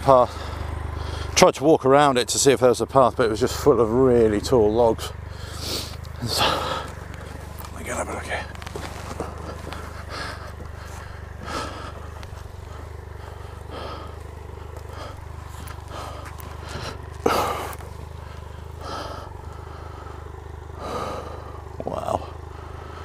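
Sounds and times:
man breathing heavily: 0.0 - 1.4, 5.2 - 7.6, 8.8 - 23.0
motorcycle engine running at low revs: 0.0 - 23.0.

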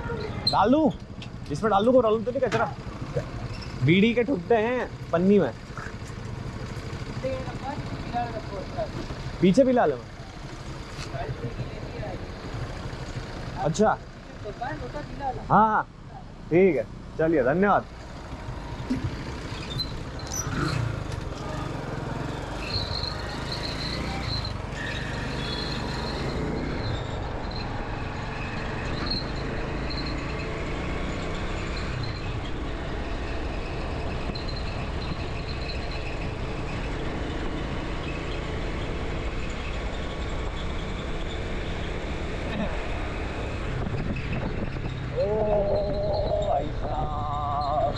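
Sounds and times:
road and wind noise: 0.0 - 47.9
traffic passing: 0.0 - 47.9
motorcycle engine running: 2.7 - 15.4, 17.8 - 47.6
garbage truck: 18.8 - 37.6.

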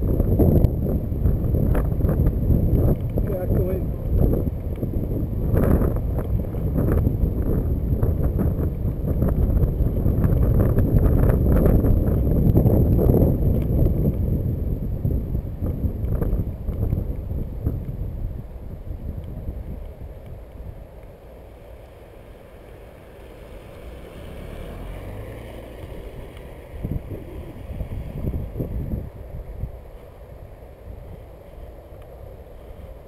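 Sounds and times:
car passing slowly: 0.0 - 33.0
wind rumbling on microphone: 0.0 - 33.0.

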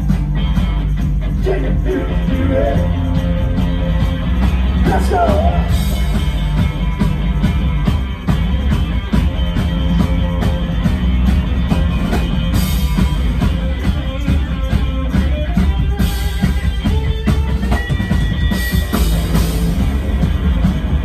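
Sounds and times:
drum-kit beat: 0.0 - 21.0
electric guitar: 0.0 - 21.0.

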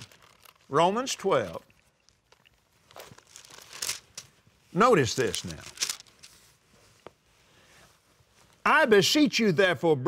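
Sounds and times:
paper pages rustling: 0.0 - 0.8, 1.5 - 7.2.

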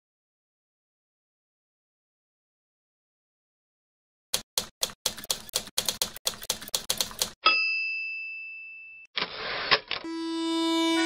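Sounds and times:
typewriter keys clacking: 4.6 - 7.4
typewriter bell ding: 7.4 - 9.1
typewriter carriage return slide: 9.2 - 10.1
music with held notes: 10.0 - 11.0.

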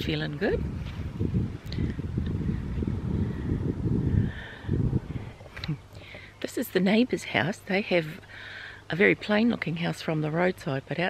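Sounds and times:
wind buffeting microphone: 0.0 - 6.2.

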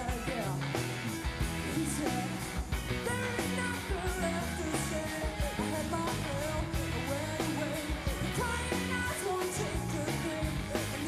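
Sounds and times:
live rock band playing: 0.0 - 11.0
woman singing: 1.6 - 11.0.

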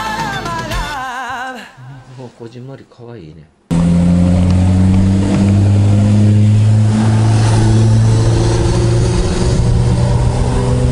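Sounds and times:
motorcycle engine running: 3.7 - 10.9.

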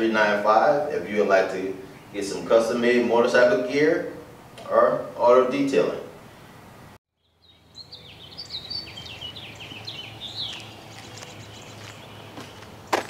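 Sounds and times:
songbirds chirping: 0.0 - 4.5, 7.2 - 13.0.

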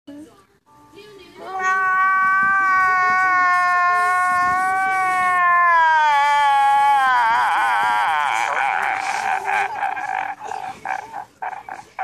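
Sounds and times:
man wailing: 1.6 - 10.4.

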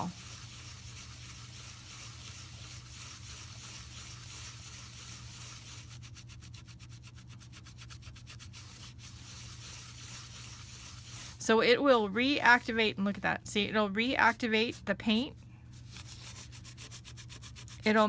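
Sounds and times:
sponge scrubbing plastic: 0.0 - 12.9, 14.0 - 18.0.

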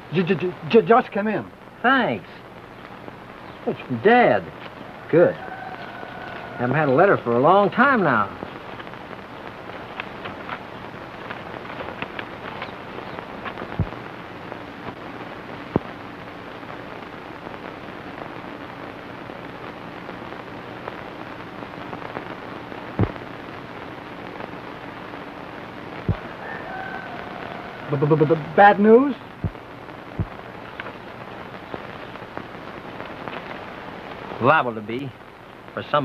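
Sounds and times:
faint low hum: 0.0 - 36.0
film soundtrack hiss and crackle: 0.0 - 36.0
sharp pops: 8.3 - 14.1, 15.6 - 16.0, 22.9 - 23.3, 26.0 - 26.3, 29.1 - 35.8.

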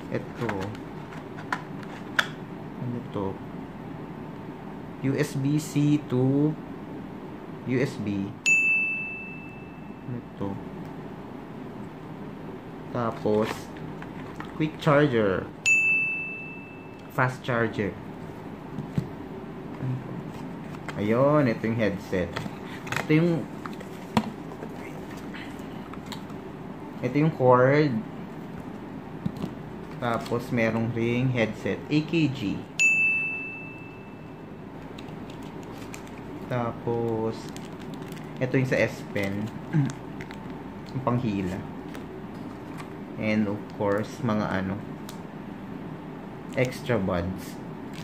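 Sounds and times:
high ringing tone: 8.4 - 10.4, 15.6 - 17.7, 32.7 - 34.8.

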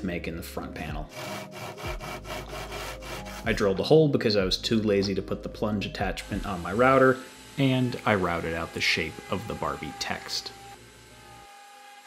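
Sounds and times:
cordless drill grinding through wood: 1.1 - 3.5, 6.2 - 12.0.

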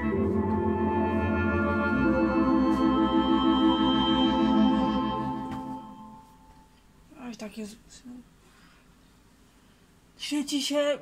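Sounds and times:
organ chords with tremolo: 0.0 - 6.5.

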